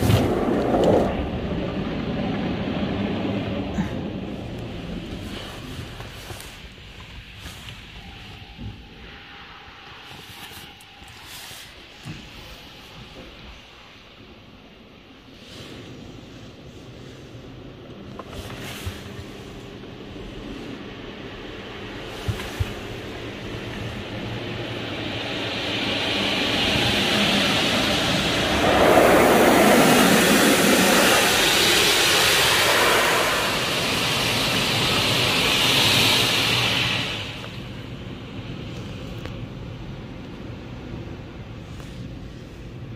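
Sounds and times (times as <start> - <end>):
wash brushes scrubbing car: 15.3 - 37.5
water spray on car: 18.3 - 37.9.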